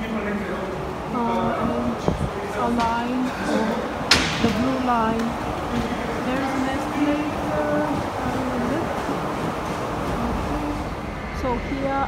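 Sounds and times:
metro station background noise: 0:00.0 - 0:12.0.

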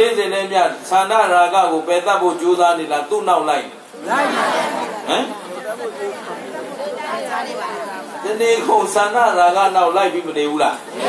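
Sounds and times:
man speaking through microphone: 0:00.0 - 0:03.8, 0:08.2 - 0:10.9.

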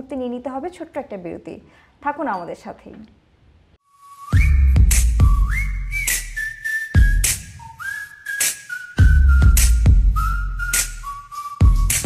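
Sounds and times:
whistle-like synth melody: 0:03.9 - 0:12.0.

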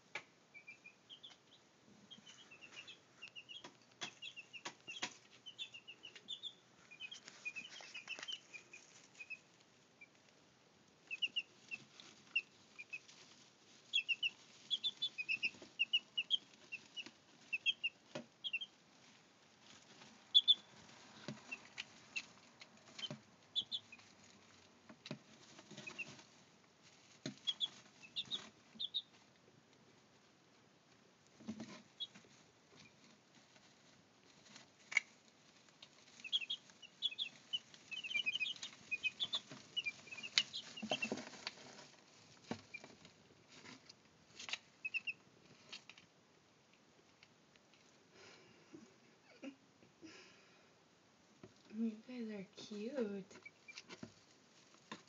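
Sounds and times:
chicks peeping: 0:00.1 - 0:48.3, 0:52.7 - 0:55.0.

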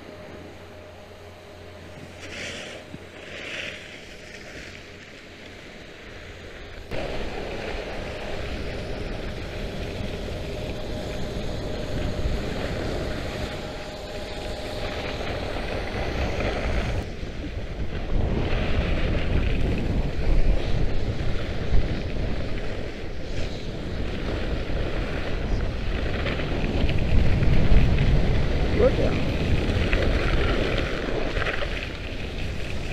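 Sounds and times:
skis sliding on icy snow: 0:01.7 - 0:32.9
wind buffeting microphone: 0:06.3 - 0:32.9.

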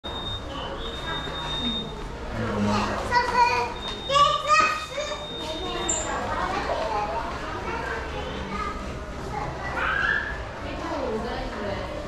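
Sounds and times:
chatter of voices: 0:00.1 - 0:12.0.

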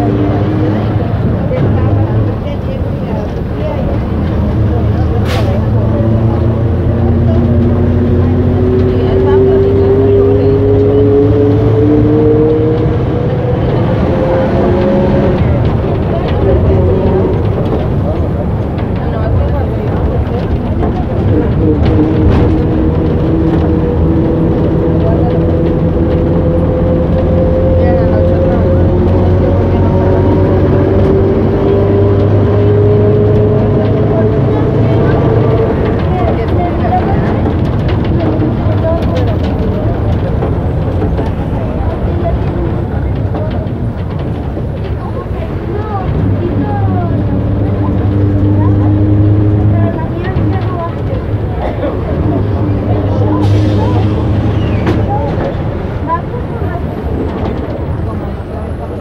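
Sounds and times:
bus engine rumble: 0:00.0 - 0:59.0.

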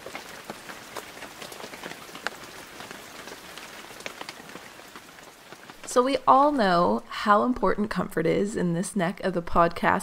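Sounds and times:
rain falling: 0:00.0 - 0:08.0.

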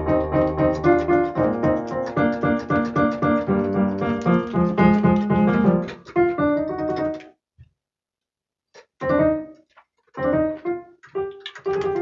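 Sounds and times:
piano keyboard improvisation: 0:00.0 - 0:07.3, 0:09.0 - 0:12.0.

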